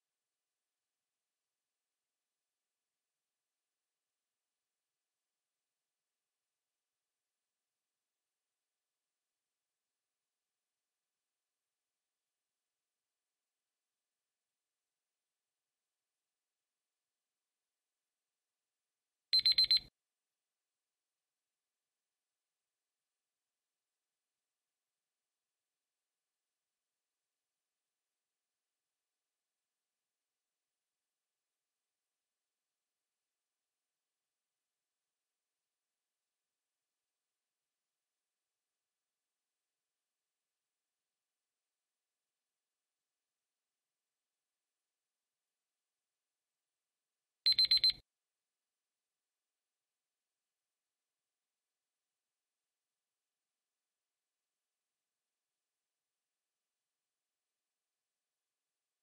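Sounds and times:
quick high-pitched beeps: 0:19.4 - 0:19.9, 0:47.5 - 0:48.0.

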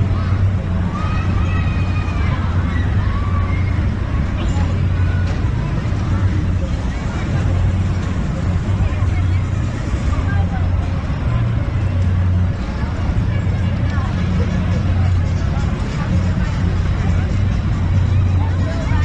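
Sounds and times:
crowd voices: 0:00.0 - 0:19.0.

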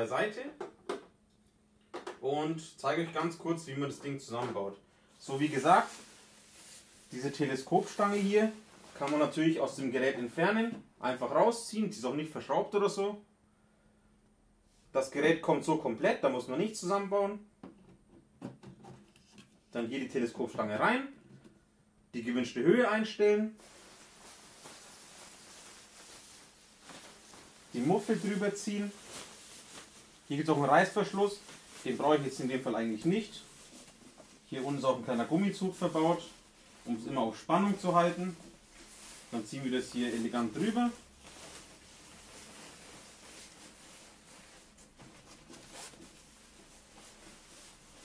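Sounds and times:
room hiss: 0:02.4 - 0:17.4, 0:22.0 - 0:48.0
fabric rustling: 0:05.2 - 0:09.4, 0:23.6 - 0:48.0
soft brushing scrapes: 0:05.2 - 0:09.4, 0:23.6 - 0:48.0.

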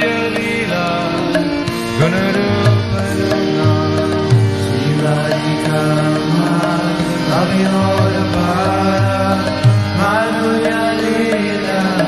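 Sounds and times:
light percussion beat: 0:00.0 - 0:12.0.

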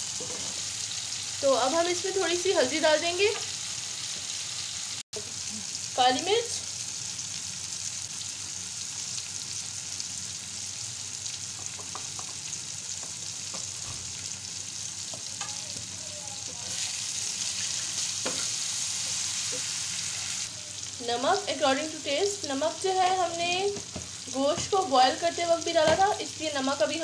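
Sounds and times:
food sizzling in hot oil: 0:00.0 - 0:27.0.

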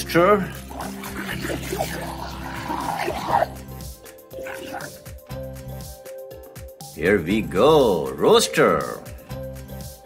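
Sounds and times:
background music: 0:00.0 - 0:10.0
toy being scrubbed: 0:00.7 - 0:03.6
man laughing: 0:00.9 - 0:03.6.

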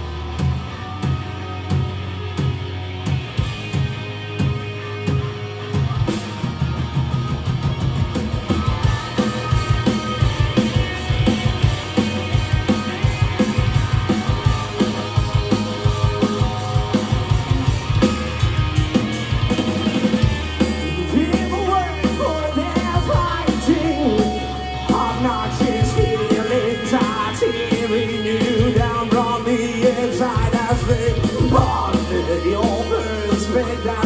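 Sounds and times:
bass guitar: 0:00.0 - 0:34.0
distorted electric guitars: 0:00.0 - 0:34.0
driving drum beat: 0:00.0 - 0:34.0.

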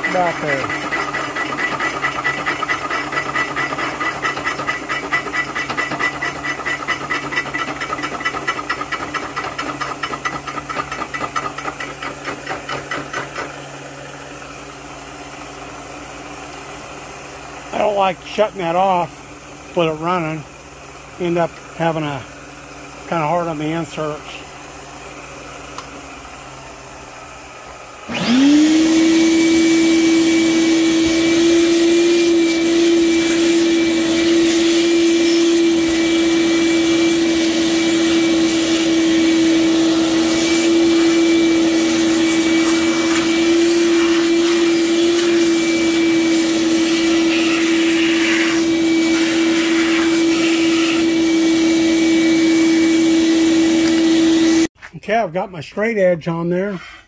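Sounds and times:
shop vacuum motor whining: 0:00.0 - 0:54.8.

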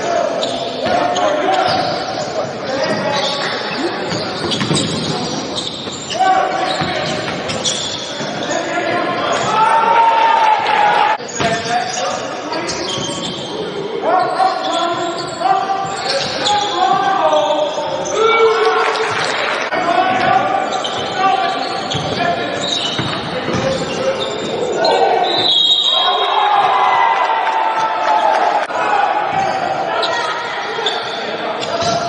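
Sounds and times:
voices echoing: 0:00.0 - 0:32.0.

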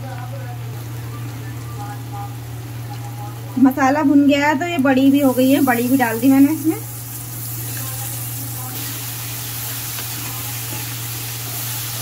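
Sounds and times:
onions sizzling in oil: 0:04.9 - 0:12.0.

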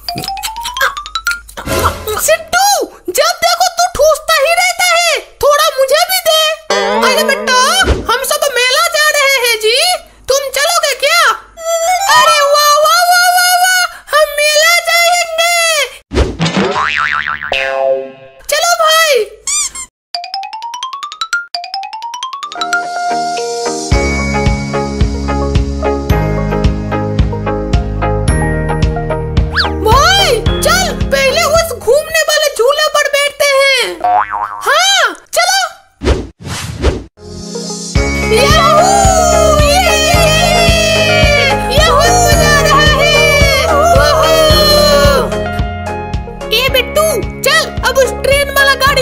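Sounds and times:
high-pitched cartoon voices talking: 0:06.2 - 0:08.5, 0:38.3 - 0:45.4
comedic boing sound effect: 0:06.7 - 0:07.9, 0:16.5 - 0:18.4, 0:34.0 - 0:34.7
swooping cartoon sounds: 0:06.7 - 0:08.1.

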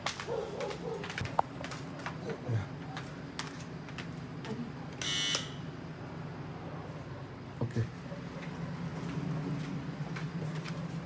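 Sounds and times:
doorbell buzzer: 0:05.0 - 0:05.6.

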